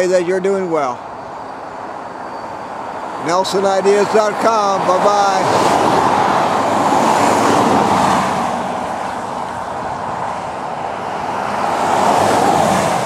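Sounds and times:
highway traffic passing: 0.0s - 13.0s.

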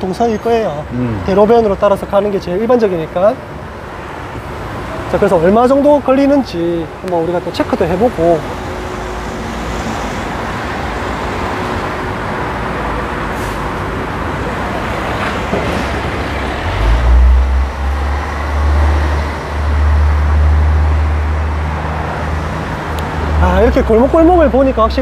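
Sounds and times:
heavy vehicle engine rumble: 0.0s - 25.0s
road traffic noise: 0.0s - 25.0s.

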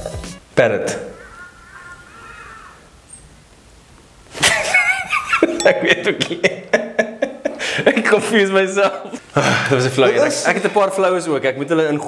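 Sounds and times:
ibis calls: 0.3s - 3.4s.

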